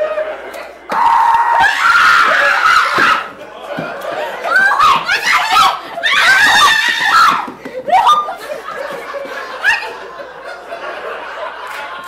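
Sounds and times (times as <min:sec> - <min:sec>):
people laughing loudly: 0:00.0 - 0:12.0.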